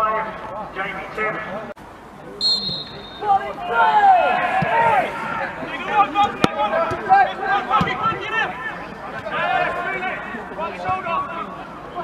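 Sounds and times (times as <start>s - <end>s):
background chatter: 0.0s - 12.0s
players calling out: 2.3s - 12.0s.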